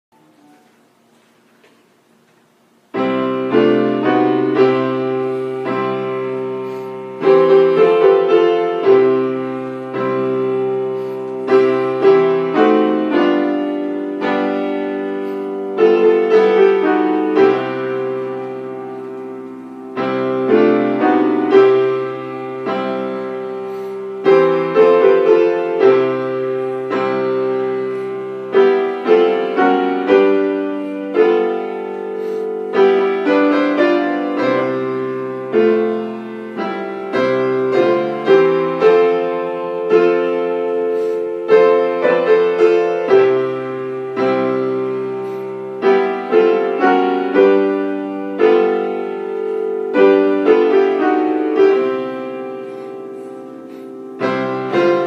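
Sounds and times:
piano playing hymn chords: 0:00.1 - 0:55.0.

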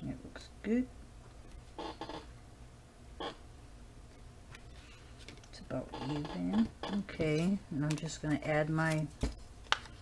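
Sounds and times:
woman speaking: 0:05.5 - 0:09.2.

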